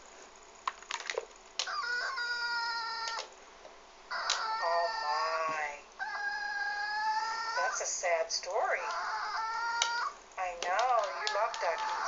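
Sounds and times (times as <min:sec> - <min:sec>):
dog whining: 0:01.8 - 0:03.2, 0:08.6 - 0:10.2.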